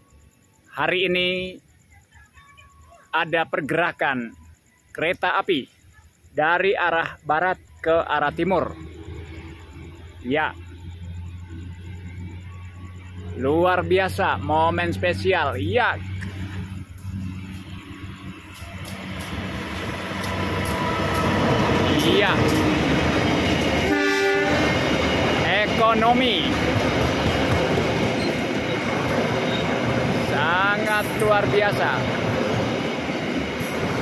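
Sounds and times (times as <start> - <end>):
distant train rumble: 6.5 - 34.0.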